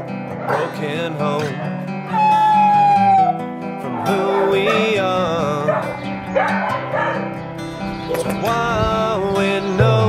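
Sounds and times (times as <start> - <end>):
dog crying: 0.0 - 0.8, 1.5 - 7.4
background music chords: 0.0 - 10.0.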